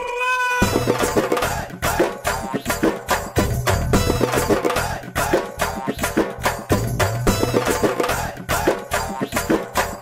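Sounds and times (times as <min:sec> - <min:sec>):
background music with drum beat: 0:00.6 - 0:10.0.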